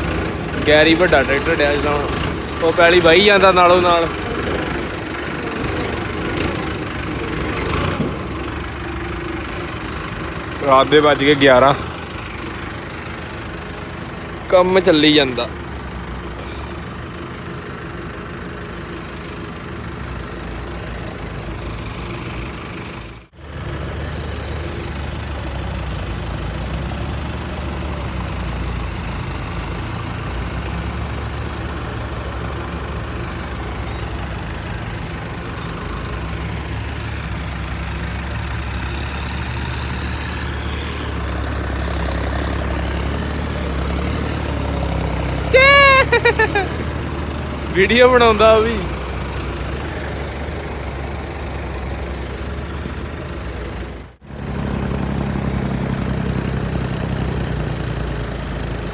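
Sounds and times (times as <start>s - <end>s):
tractor diesel engine running: 0.0s - 58.9s.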